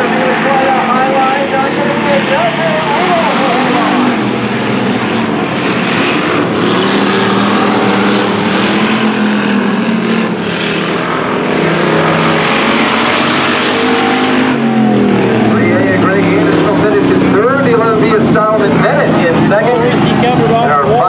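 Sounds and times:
voices: 0:00.0 - 0:04.9, 0:13.6 - 0:21.0
race car engines roaring: 0:00.0 - 0:21.0.

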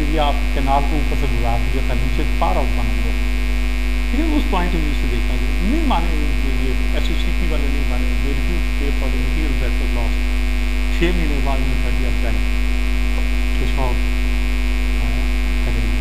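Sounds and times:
faint speech: 0:00.0 - 0:03.1, 0:04.2 - 0:10.2, 0:11.0 - 0:12.4, 0:13.2 - 0:14.0, 0:15.0 - 0:16.0
electrical mains hum: 0:00.0 - 0:16.0.

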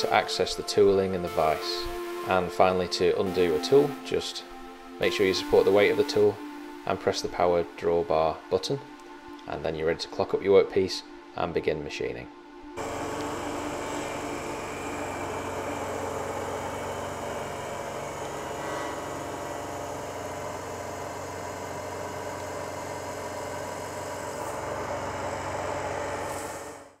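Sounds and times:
milling machine hum: 0:12.8 - 0:27.0.

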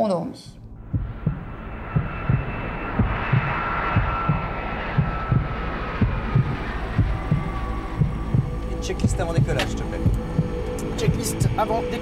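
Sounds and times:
jet engines whining: 0:00.6 - 0:12.0
low thumps pulsing: 0:00.6 - 0:12.0.

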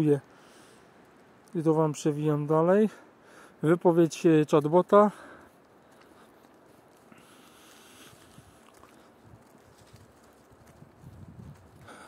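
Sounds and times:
faint steady hiss: 0:00.0 - 0:10.3.

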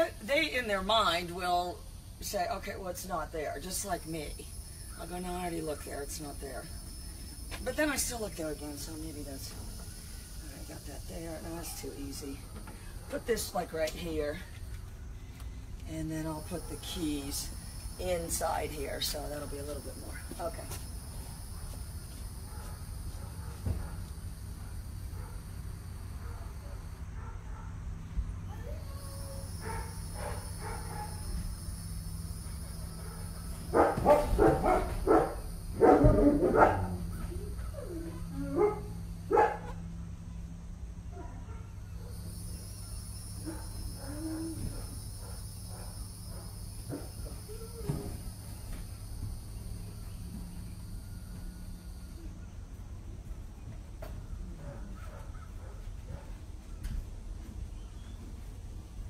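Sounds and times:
high insect drone: 0:00.0 - 0:27.3, 0:28.0 - 0:52.8
steady low hum: 0:00.0 - 0:59.0
dog barking: 0:26.2 - 0:27.8, 0:29.1 - 0:31.2, 0:33.0 - 0:37.0, 0:38.5 - 0:39.8, 0:41.1 - 0:42.3, 0:43.4 - 0:47.2, 0:54.6 - 0:56.3.

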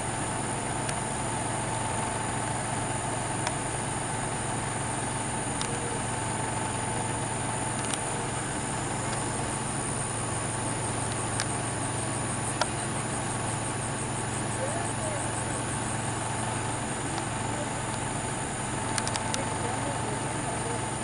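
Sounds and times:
background hum and hiss: 0:00.0 - 0:21.0
short clicks: 0:07.7 - 0:08.1, 0:18.9 - 0:19.5.

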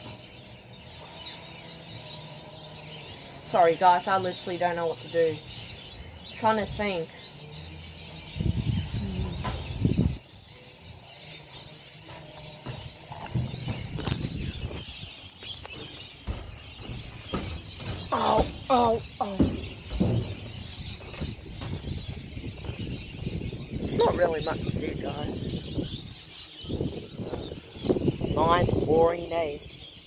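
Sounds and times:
bird calls: 0:00.0 - 0:30.0.

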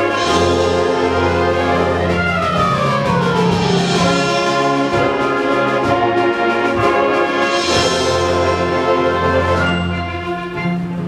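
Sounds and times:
band playing sustained chords: 0:00.0 - 0:11.0.

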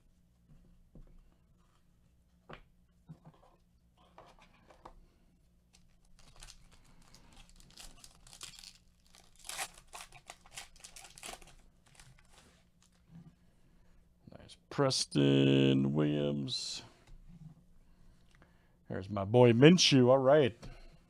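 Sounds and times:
foil wrapper tearing and crinkling: 0:05.8 - 0:13.0.

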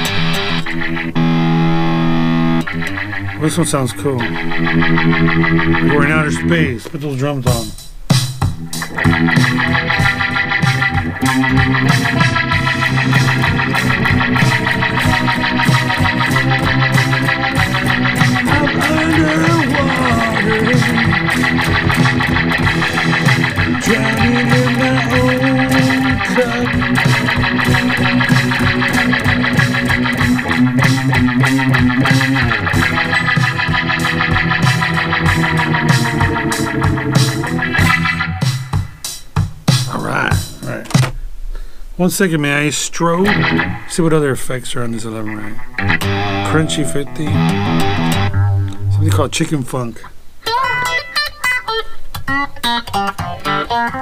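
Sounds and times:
spacey electric guitar: 0:00.0 - 0:39.0, 0:43.2 - 0:44.1, 0:45.1 - 0:49.5, 0:50.4 - 0:54.0
programmed drum track: 0:00.0 - 0:44.1.

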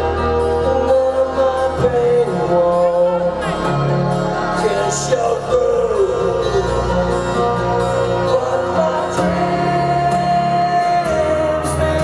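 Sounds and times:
rock band playing slow ballad: 0:00.0 - 0:12.0.

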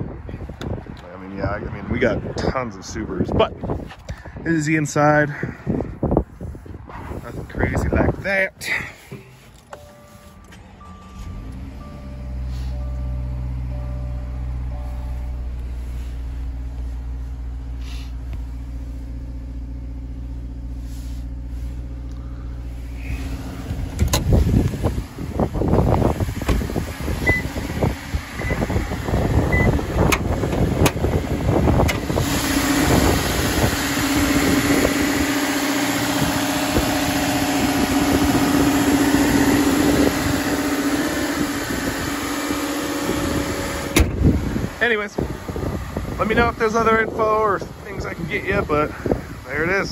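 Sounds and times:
wind buffeting microphone: 0:00.0 - 0:08.6, 0:23.1 - 0:49.9
car engine idling: 0:00.1 - 0:49.9.

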